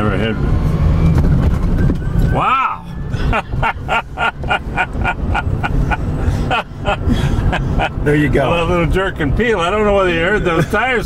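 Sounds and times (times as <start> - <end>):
road rumble inside vehicle: 0.0 - 11.0
man laughing: 2.9 - 8.2, 10.3 - 11.0.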